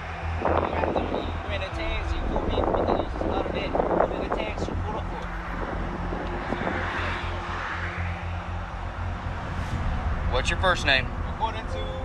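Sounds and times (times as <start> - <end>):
road traffic rumble: 0.0 - 12.0
wind noise: 0.0 - 12.0
passing vehicle: 1.7 - 12.0.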